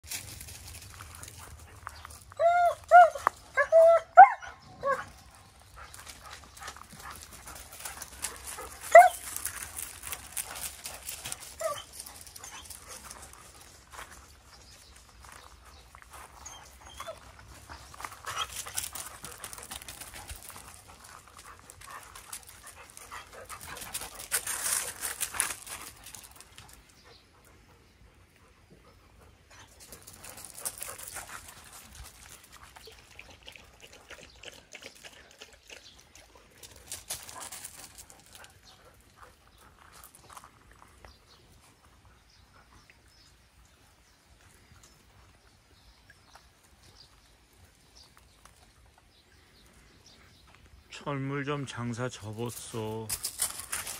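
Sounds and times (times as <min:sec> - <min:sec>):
scuffling on gravel: 0:00.0 - 0:26.9, 0:36.6 - 0:42.0, 0:52.3 - 0:53.9
dog yipping: 0:02.4 - 0:05.1, 0:08.9 - 0:09.2.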